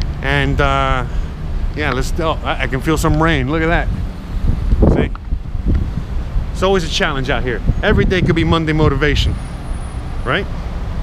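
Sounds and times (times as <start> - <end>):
wind buffeting microphone: 0.0 - 10.2
street traffic: 0.0 - 11.0.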